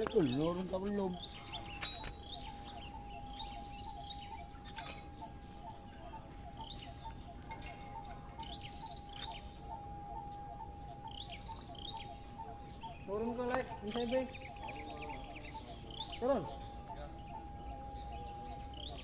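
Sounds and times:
pulsing high tone: 0.0 - 19.0
small birds chirping: 0.0 - 19.0.

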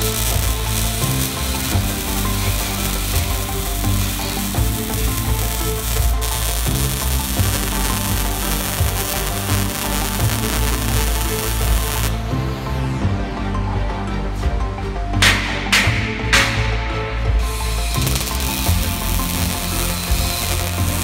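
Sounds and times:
arc welding crackle: 0.0 - 12.2, 17.9 - 21.0
background music with sustained chords: 0.0 - 21.0.

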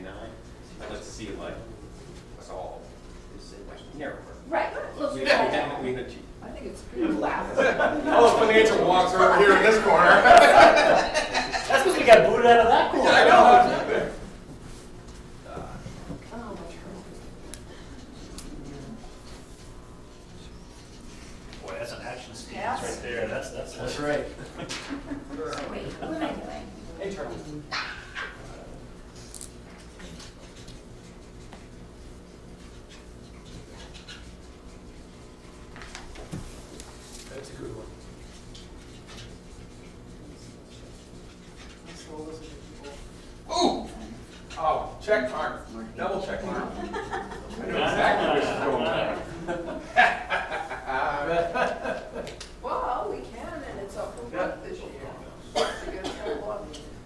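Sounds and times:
people talking indistinctly: 0.0 - 14.4
loud voice: 43.5 - 44.0.

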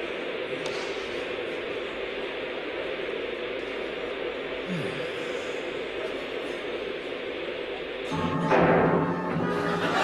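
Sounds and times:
television static hiss: 0.0 - 10.0.

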